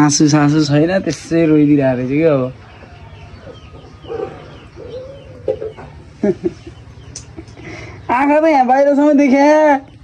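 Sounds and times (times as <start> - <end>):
chickens clucking: 1.4 - 8.5.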